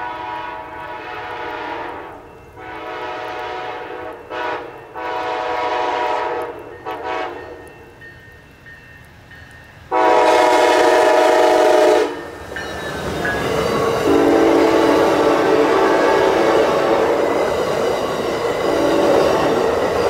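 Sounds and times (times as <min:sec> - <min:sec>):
train horn blasts: 0:00.0 - 0:07.8, 0:09.9 - 0:12.4, 0:14.0 - 0:17.3, 0:18.6 - 0:19.6
train wheels rushing on rails: 0:00.0 - 0:20.0.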